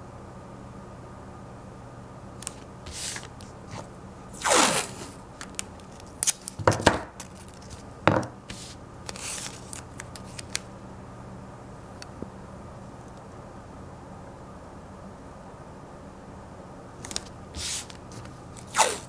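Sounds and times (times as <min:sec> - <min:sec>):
masking tape ripping off roll: 0:04.4 - 0:06.6, 0:18.6 - 0:19.0.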